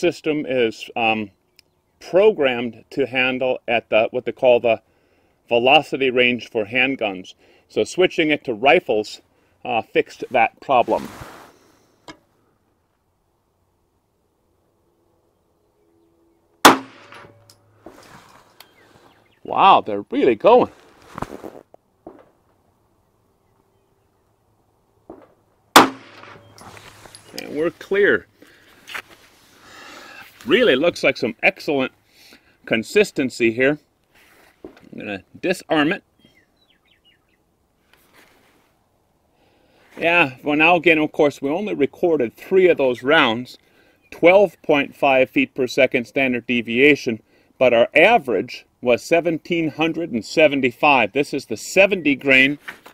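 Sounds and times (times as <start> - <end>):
pistol shot: 16.7 - 17.4, 25.8 - 26.5
small bird chirping: 18.4 - 19.5, 26.4 - 27.5, 36.2 - 37.4.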